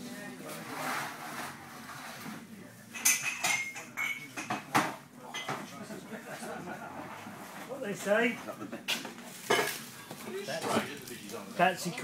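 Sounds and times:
metal pots and cutlery clinking: 0:02.9 - 0:05.8, 0:08.9 - 0:10.9.

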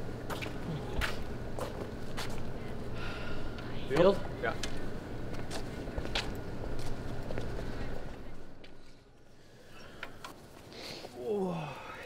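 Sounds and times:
steady low hum: 0:00.0 - 0:12.0
footsteps: 0:00.2 - 0:02.6, 0:03.9 - 0:09.0.

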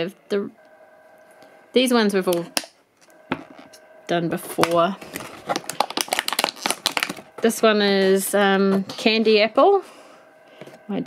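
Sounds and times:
plastic tray crackling: 0:04.5 - 0:08.2.

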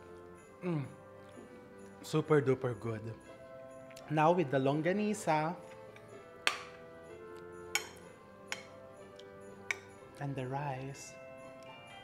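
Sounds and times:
soft background music: 0:00.0 - 0:12.0
chopsticks clicking on a bowl: 0:05.9 - 0:06.7, 0:07.8 - 0:09.9.

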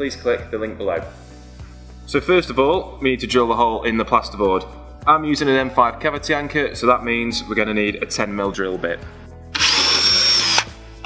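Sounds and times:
cordless drill boring plasterboard: 0:09.6 - 0:10.8.

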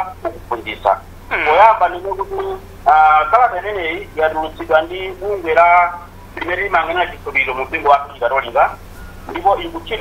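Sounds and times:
person talking over a phone line: 0:00.0 - 0:10.0.

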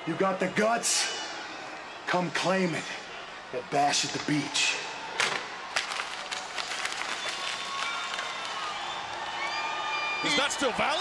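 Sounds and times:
crowd cheering and clapping: 0:04.6 - 0:11.0
sharp claps: 0:05.7 - 0:09.3.

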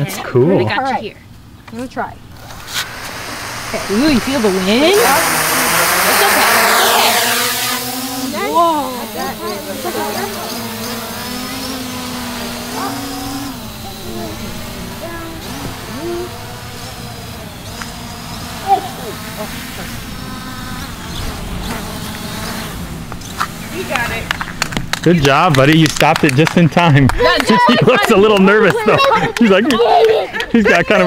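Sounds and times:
drone propellers buzzing: 0:02.0 - 0:26.5.

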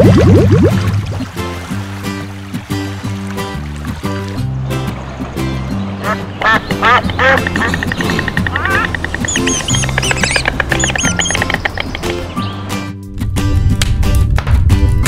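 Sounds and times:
background music: 0:00.0 - 0:15.0
duck quacks: 0:06.0 - 0:11.4.

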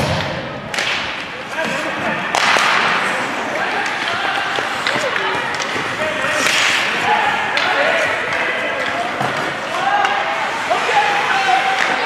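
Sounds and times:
hockey sticks clacking on puck: 0:00.7 - 0:12.0
skate scraping ice: 0:01.3 - 0:12.0
indistinct shouting voices: 0:01.4 - 0:12.0.

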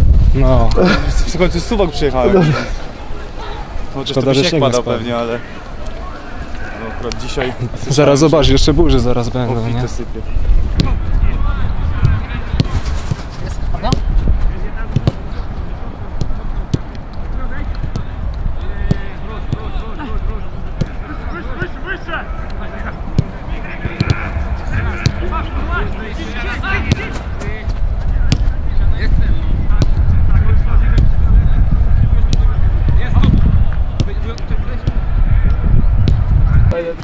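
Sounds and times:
steady low rumble: 0:00.0 - 0:01.7, 0:22.6 - 0:36.8
distant players calling: 0:09.4 - 0:29.7
boots kicking football: 0:12.0 - 0:15.3, 0:16.2 - 0:17.0, 0:23.1 - 0:25.3.

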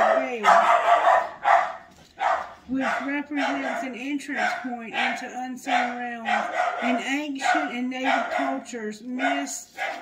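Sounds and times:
woman speaking: 0:00.0 - 0:00.8, 0:02.7 - 0:09.8
dog barking: 0:00.0 - 0:10.0.

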